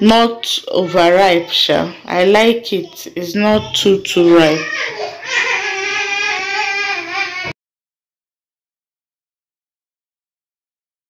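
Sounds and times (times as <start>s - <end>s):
young child crying: 4.3s - 7.6s.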